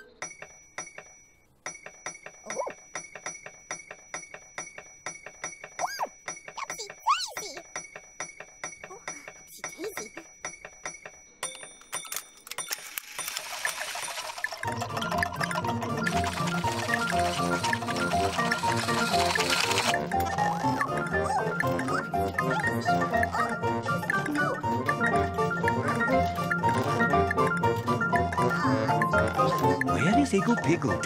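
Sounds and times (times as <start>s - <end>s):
high chiming tones: 8.7s - 23.5s
fast even ticking: 13.2s - 31.0s
lively theme music: 13.4s - 31.0s.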